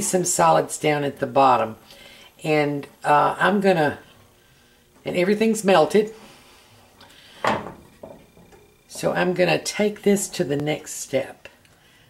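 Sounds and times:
metal pot clunk on stove: 7.4 - 8.7.

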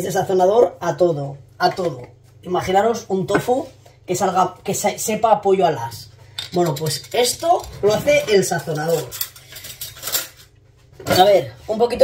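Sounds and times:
utensils clinking and knocking: 6.4 - 11.3.

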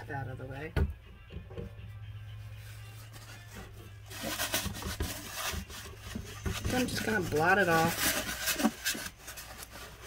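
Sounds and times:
paper towel rubbing on wood: 2.6 - 10.0.

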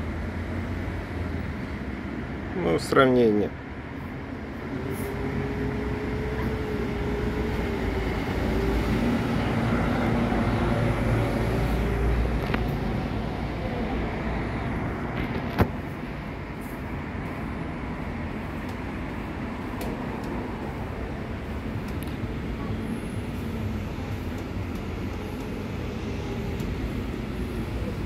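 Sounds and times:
motor vehicle rumble: 3.5 - 28.0.

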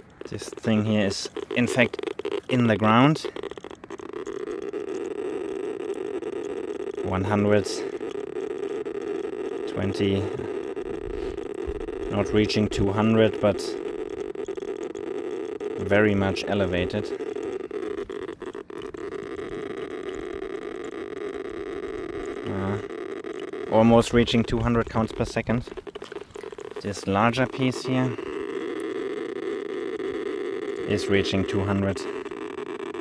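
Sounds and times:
geiger counter crackle: 0.0 - 33.0.

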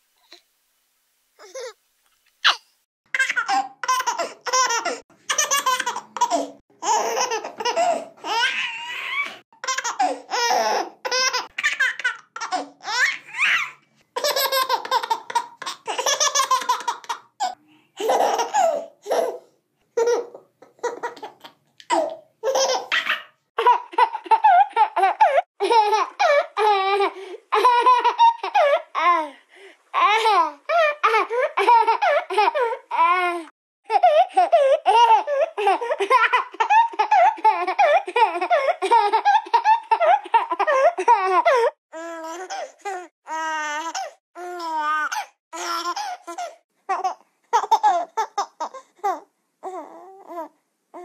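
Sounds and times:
baby laughing: 2.4 - 29.3, 30.0 - 33.3, 33.9 - 41.6, 43.8 - 49.8.

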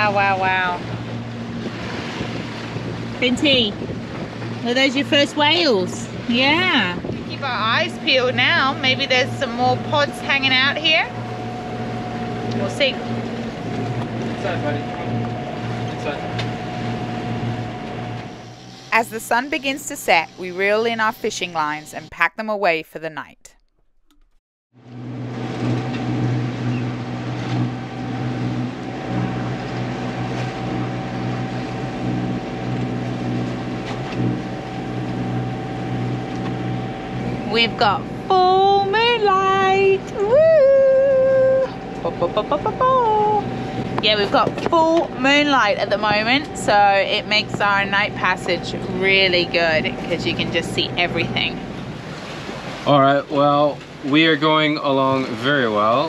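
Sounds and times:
water rushing: 0.0 - 22.1, 24.8 - 56.0
wind: 0.0 - 22.1, 24.8 - 56.0
boat engine drone: 0.0 - 23.2, 23.9 - 56.0
woman whooping playfully: 40.2 - 41.8.

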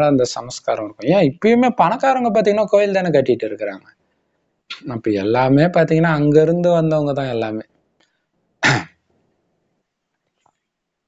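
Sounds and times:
man clearing throat: 8.6 - 9.0.

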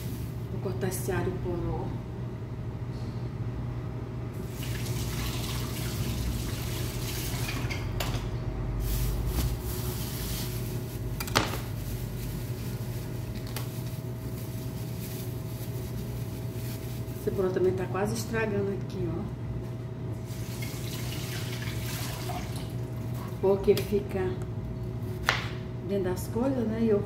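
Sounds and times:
steady hum and hiss: 0.0 - 27.0.

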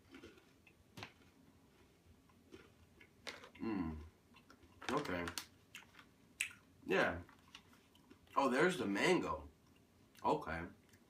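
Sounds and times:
chewing crispy snack: 0.0 - 8.5.

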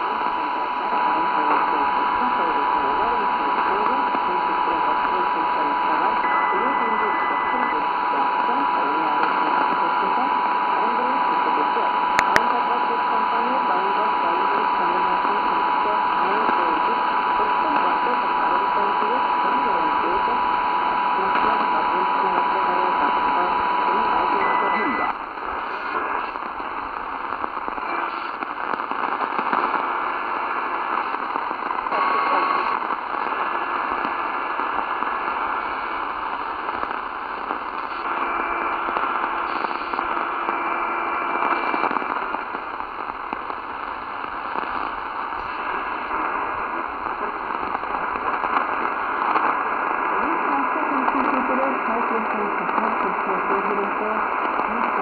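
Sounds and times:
radio whistling tones: 0.0 - 11.6, 21.2 - 55.0
radio static hiss: 0.0 - 55.0.

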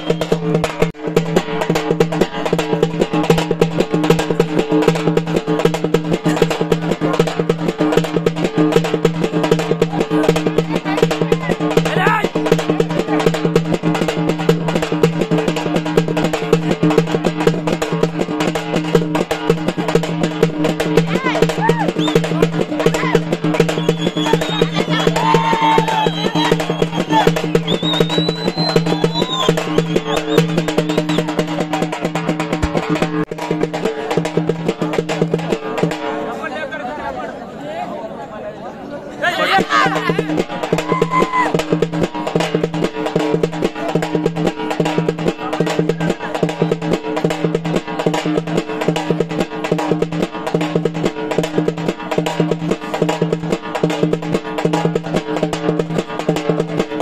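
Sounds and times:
fast continuous drumming: 0.0 - 36.2, 39.4 - 57.0
voices calling: 21.0 - 32.0, 36.4 - 42.3.

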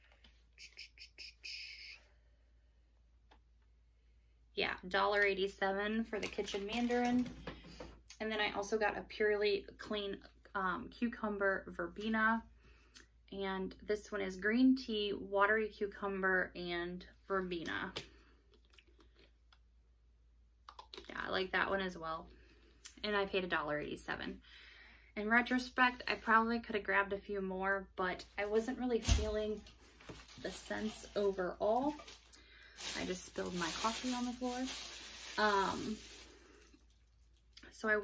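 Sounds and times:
woman whispering: 0.6 - 2.1.

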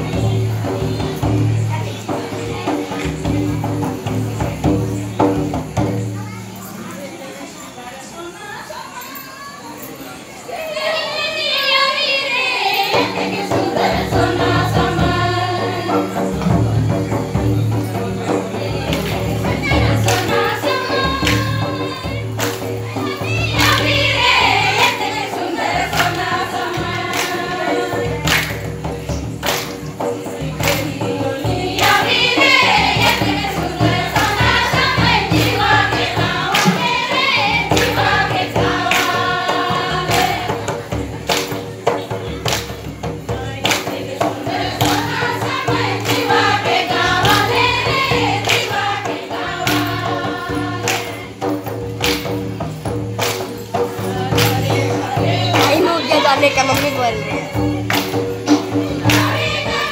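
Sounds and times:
percussion beat: 0.0 - 59.9
group singing in chorus: 10.5 - 59.9
barrel drum strokes: 30.3 - 41.1.

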